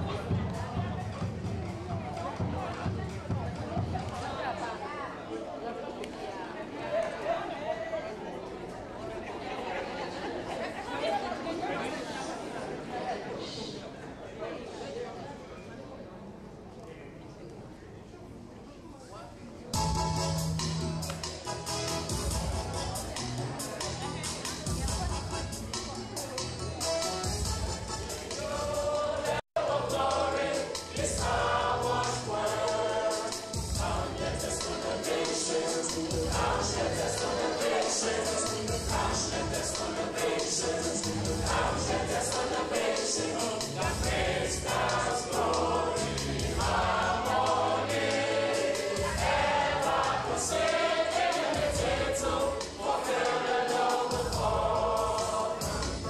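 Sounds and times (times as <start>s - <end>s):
choir singing: 27.8s - 56.0s
quick percussion beat: 29.9s - 56.0s.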